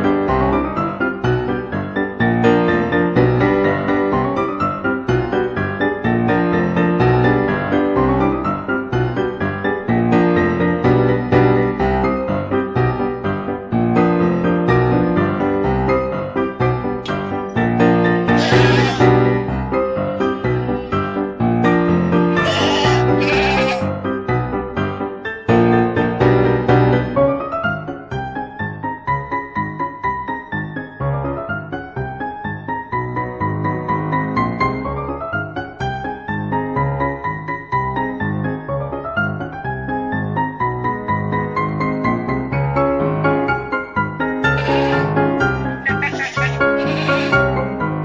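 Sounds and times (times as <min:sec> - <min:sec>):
piano music: 0:00.0 - 0:48.0
goat bleating: 0:18.3 - 0:19.1, 0:22.3 - 0:23.9, 0:44.4 - 0:47.5.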